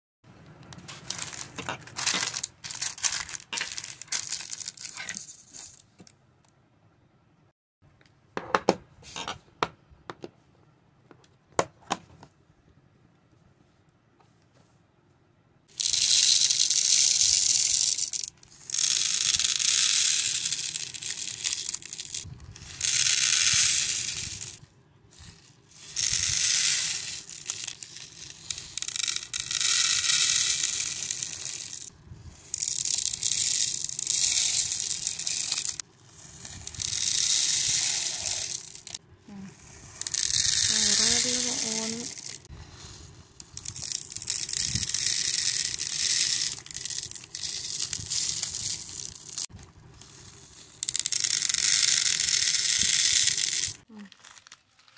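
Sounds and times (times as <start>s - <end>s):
beads rattling onto plastic: 0.6s - 6.1s, 15.7s - 39.0s, 40.0s - 42.5s, 43.4s - 54.9s.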